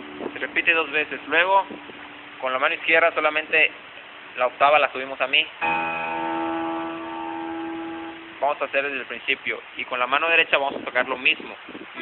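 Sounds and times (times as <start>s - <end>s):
piano chord: 5.6s - 8.5s.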